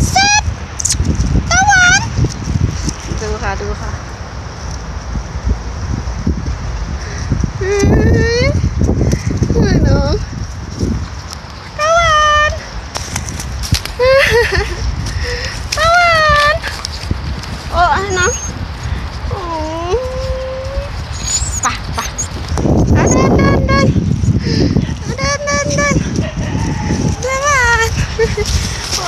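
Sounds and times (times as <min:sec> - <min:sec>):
woman calling: 0:00.0 - 0:00.5, 0:01.5 - 0:02.1, 0:07.6 - 0:08.6, 0:11.8 - 0:12.7, 0:15.8 - 0:16.8, 0:17.7 - 0:18.6, 0:19.3 - 0:24.0, 0:24.9 - 0:29.0
footsteps on dry ground: 0:12.7 - 0:15.8, 0:26.0 - 0:29.0
puppy whining: 0:17.9 - 0:18.6, 0:19.3 - 0:23.8.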